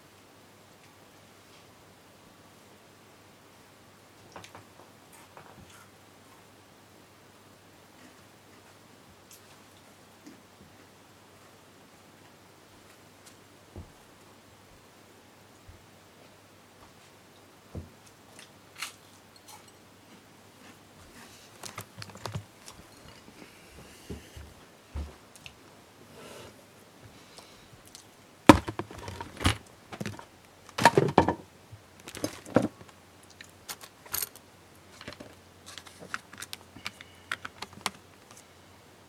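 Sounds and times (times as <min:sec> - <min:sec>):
faint hiss: 0:00.0 - 0:28.5
faint steady low hum: 0:00.0 - 0:39.0.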